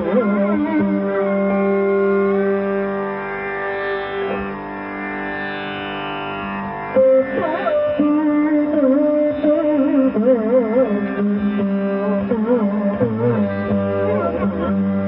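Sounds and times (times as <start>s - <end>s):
classical instrumental melody over drone: 0.0s - 15.0s.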